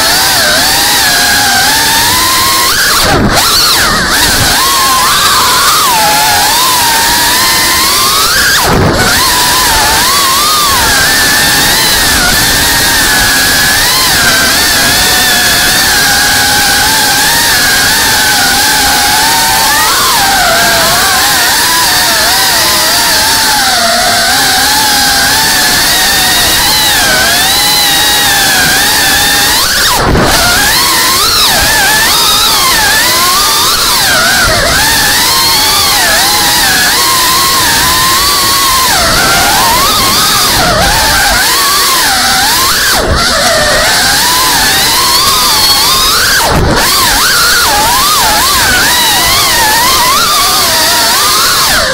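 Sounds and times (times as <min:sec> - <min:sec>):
quadcopter motors whining: 0:00.0 - 0:51.9.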